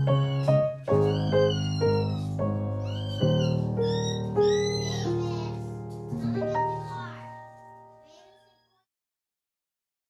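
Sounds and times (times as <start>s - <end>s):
piano chord ringing out: 2.2s - 8.1s.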